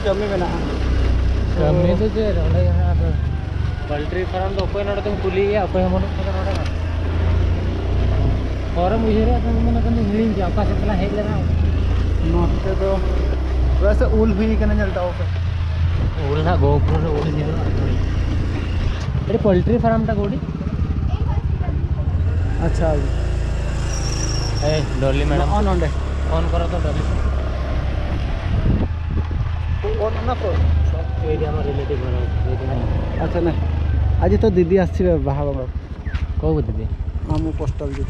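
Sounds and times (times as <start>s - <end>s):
voices talking: 0.0s - 38.0s
wind and road noise rumble: 0.0s - 38.0s
motor scooter engine running: 16.8s - 24.0s.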